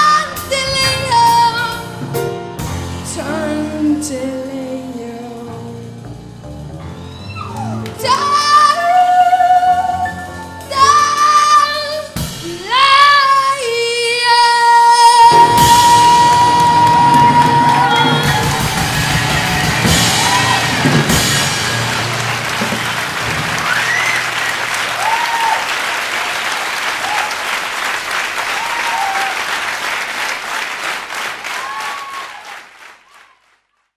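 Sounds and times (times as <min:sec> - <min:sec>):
jazz band playing: 0:00.0 - 0:25.6
audience applause and cheering: 0:06.8 - 0:08.7, 0:15.2 - 0:33.7
whistles from audience: 0:07.0 - 0:07.8, 0:23.6 - 0:25.6, 0:31.6 - 0:33.5.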